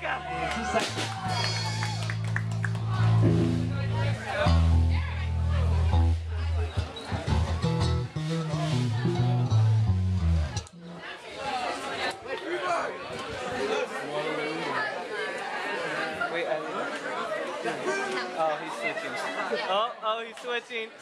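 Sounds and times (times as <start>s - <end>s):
electric bass guitar low notes: 0.0s - 11.0s
roomful of people chattering: 0.0s - 21.0s.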